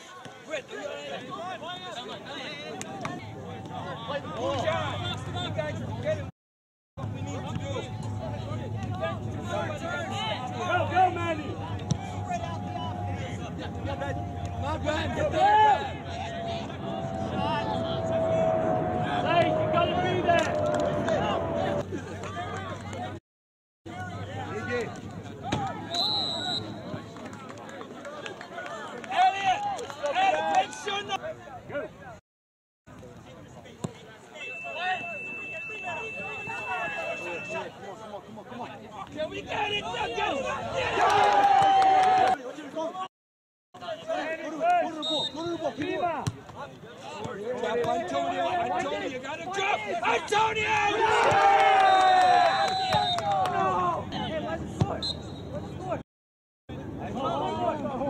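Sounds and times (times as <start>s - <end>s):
players and spectators shouting: 7.2s - 22.8s, 28.6s - 31.4s, 34.4s - 37.8s, 39.2s - 42.7s, 47.0s - 55.0s
faint steady high tone: 34.4s - 37.7s.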